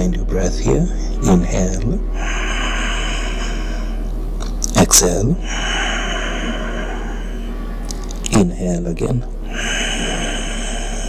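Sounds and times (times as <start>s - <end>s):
constant low hum: 0.0s - 11.0s
man inhaling through nose: 2.1s - 4.1s, 5.4s - 7.5s, 9.5s - 11.0s.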